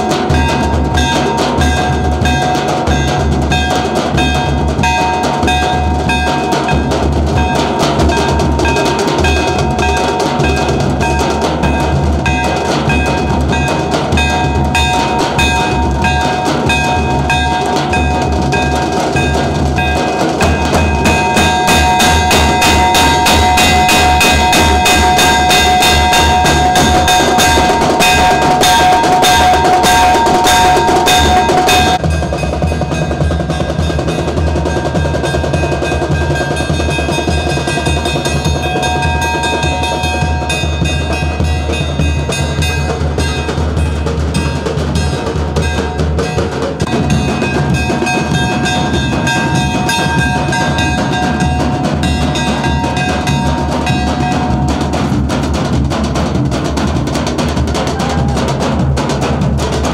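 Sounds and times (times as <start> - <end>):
marching bass drums: 0.0 - 59.9
high held note: 12.3 - 32.2.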